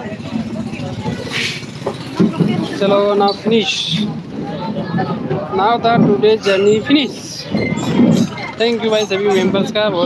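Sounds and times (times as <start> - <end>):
boat engine rumble: 0.0 - 10.0
voices talking: 0.0 - 10.0.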